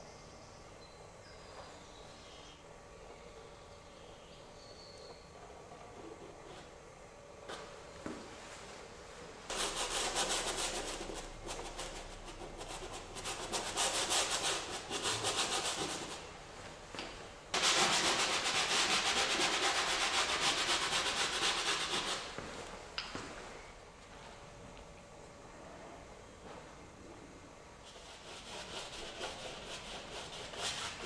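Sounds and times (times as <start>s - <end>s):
bristle brush scrubbing canvas: 9.5s - 16.2s, 27.9s - 31.0s.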